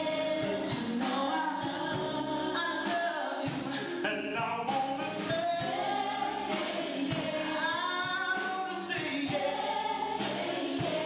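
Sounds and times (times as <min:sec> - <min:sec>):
vocal group singing: 0:00.0 - 0:11.0.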